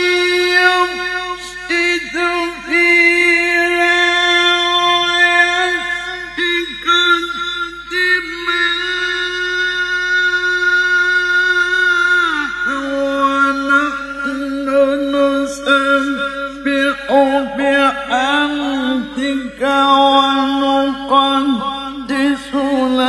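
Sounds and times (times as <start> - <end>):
man reciting melodically: 0.0 - 23.0.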